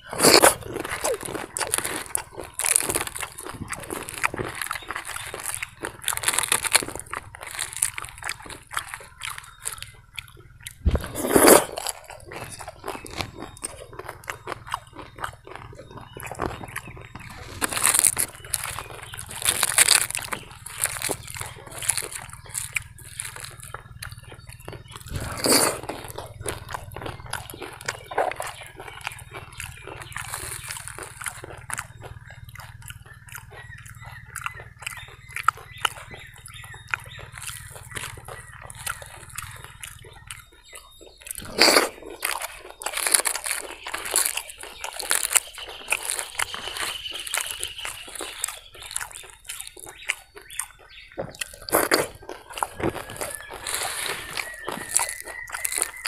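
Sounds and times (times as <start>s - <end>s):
fingers squishing soft food: 0.0s - 56.0s
wet chewing and mouth smacks: 0.0s - 56.0s.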